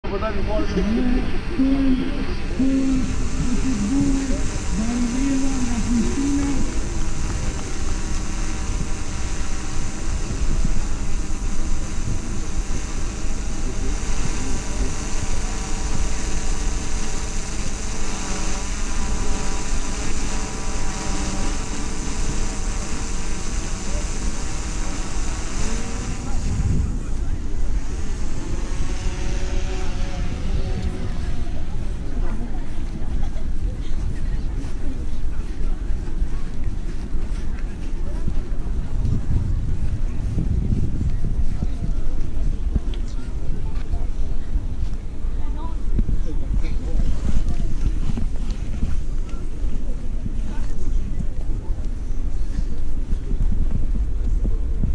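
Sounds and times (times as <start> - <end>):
person speaking: 0.0 - 8.1
wind rumbling on microphone: 0.0 - 54.9.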